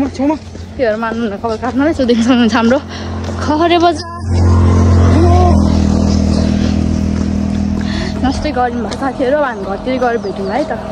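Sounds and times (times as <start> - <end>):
vehicle engine running: 0.0 - 10.9.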